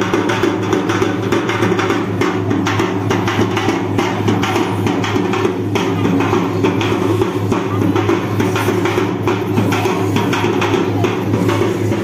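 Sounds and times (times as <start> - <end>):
quick drum strikes: 0.0 - 12.0.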